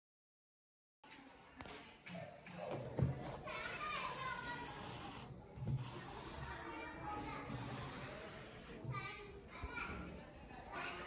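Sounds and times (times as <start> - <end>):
background voices: 2.6 - 10.9.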